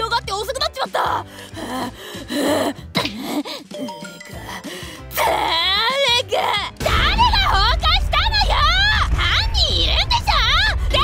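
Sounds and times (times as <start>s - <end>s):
quiet background music: 0.0s - 11.0s
woman gasping in distress: 1.2s - 5.2s.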